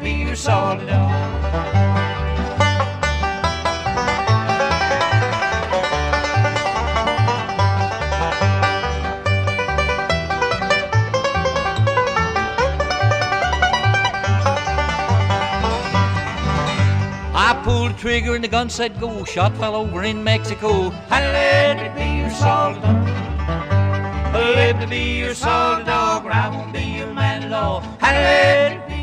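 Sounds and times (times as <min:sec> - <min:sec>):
acoustic guitar: 0:00.0 - 0:29.0
banjo picking: 0:00.0 - 0:29.0
upright bass thumping: 0:00.1 - 0:29.0.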